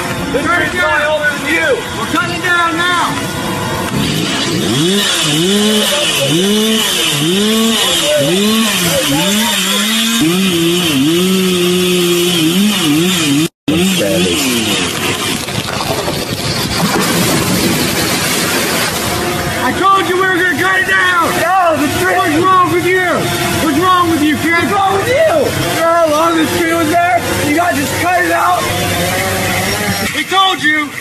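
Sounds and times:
chainsaw revving: 3.1s - 30.2s.

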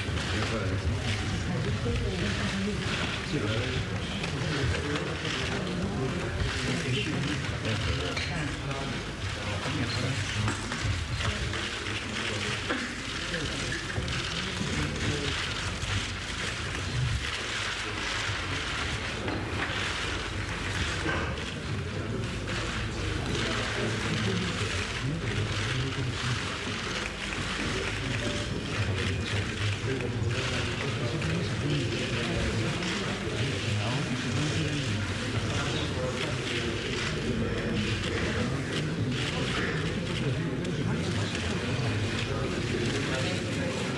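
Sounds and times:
murmur of voices: 0.0s - 43.9s.

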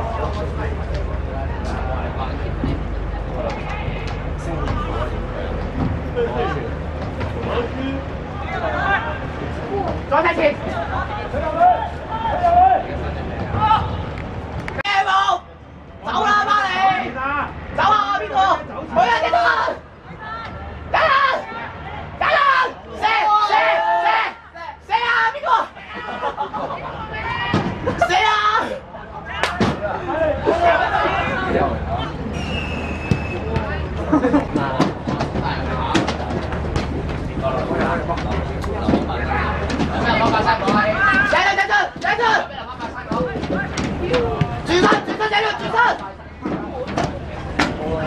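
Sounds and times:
spectators talking and calling out: 0.0s - 48.0s
players shouting: 7.5s - 48.0s.

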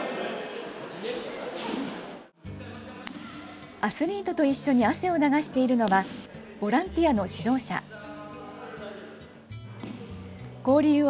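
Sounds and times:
practice hall noise: 0.0s - 4.4s
background music with low notes: 2.4s - 11.0s.

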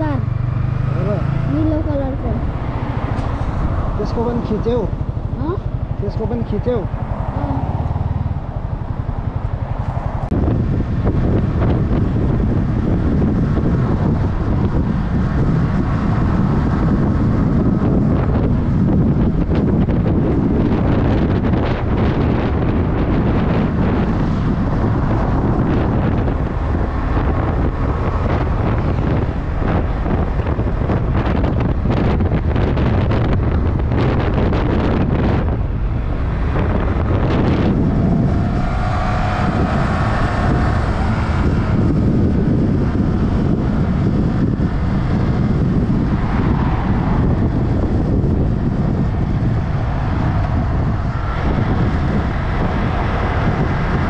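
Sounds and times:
motorcycle engine: 0.0s - 54.0s
road noise: 0.0s - 54.0s
wind rushing over microphone: 0.0s - 54.0s.

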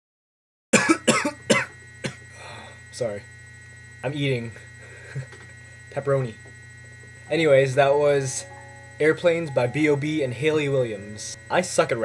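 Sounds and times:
man coughing: 0.8s - 2.5s
faint electrical hum: 0.8s - 12.0s.

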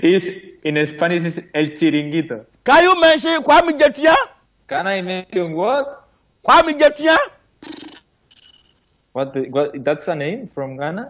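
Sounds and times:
man speaking: 0.0s - 7.4s.

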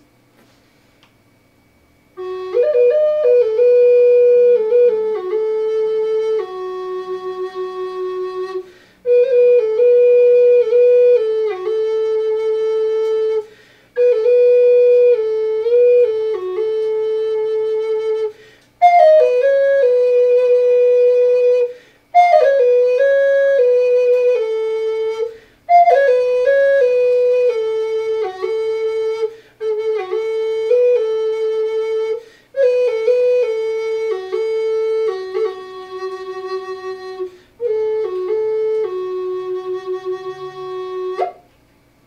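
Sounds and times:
wooden flute long low note: 2.0s - 41.5s.

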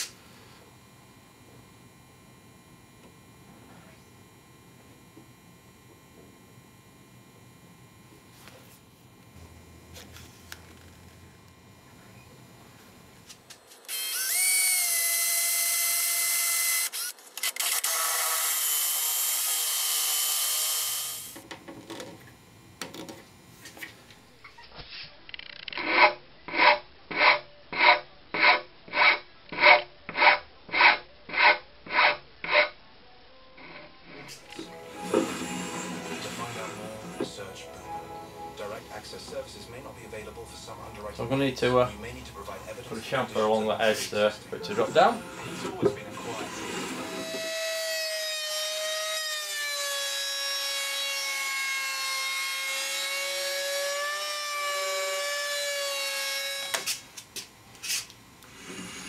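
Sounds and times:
power drill boring into wood: 13.9s - 21.4s, 45.4s - 56.8s.

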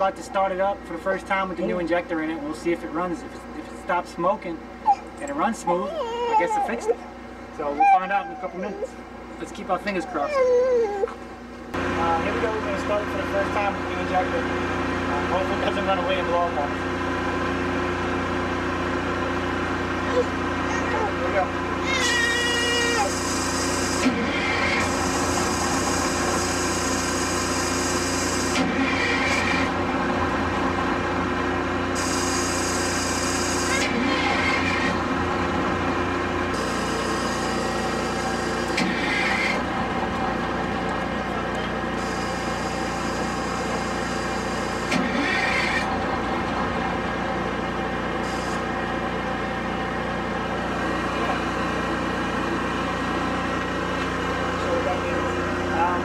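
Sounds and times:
diesel engine cranking on starter: 44.4s - 47.4s.

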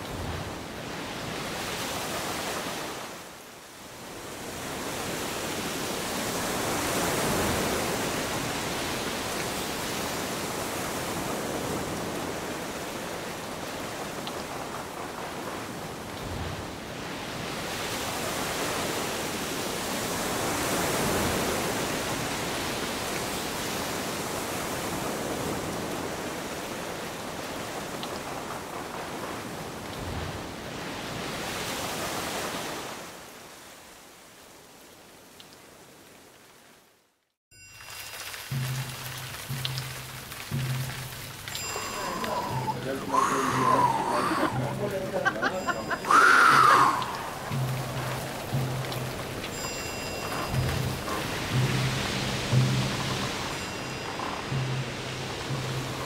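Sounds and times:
sea water churning around boat: 0.0s - 36.0s, 37.7s - 56.0s.

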